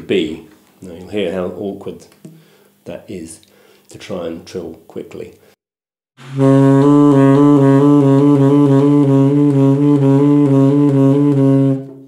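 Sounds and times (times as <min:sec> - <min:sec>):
saxophone trilling: 0:06.2 - 0:12.0.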